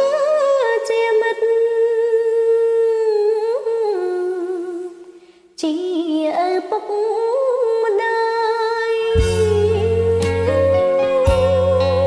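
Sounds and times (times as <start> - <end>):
woman singing: 0.0 - 12.0.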